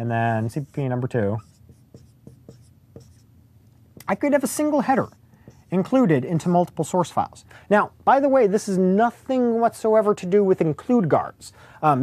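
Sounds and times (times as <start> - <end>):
marker writing on whiteboard: 0.0 - 3.3, 4.0 - 6.8.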